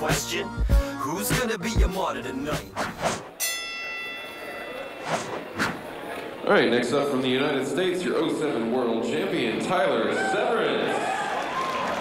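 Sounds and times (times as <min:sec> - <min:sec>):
bright ringing chime: 0:03.4 - 0:05.0
quick whooshes: 0:05.0 - 0:05.9.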